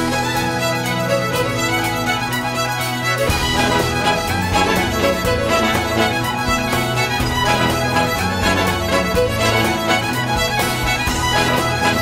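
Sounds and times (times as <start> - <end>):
fiddle playing: 0.0 - 12.0
live band with strings playing: 0.0 - 12.0
steady beat: 0.0 - 12.0.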